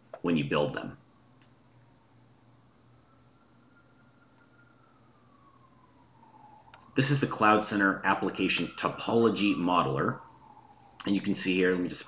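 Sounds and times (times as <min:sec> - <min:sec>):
low hum: 0:00.0 - 0:12.0
thin tone rising and falling: 0:00.0 - 0:12.0.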